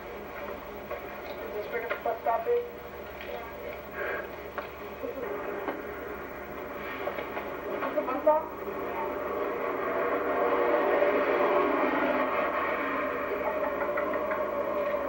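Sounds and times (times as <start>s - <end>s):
muffled voices: 0.0s - 11.6s
steady outdoor rumble: 0.0s - 15.0s.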